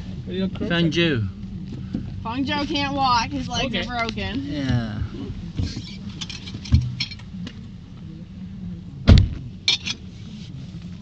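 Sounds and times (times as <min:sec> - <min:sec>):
car engine idling: 0:00.0 - 0:11.0
car door slamming: 0:09.0 - 0:09.5.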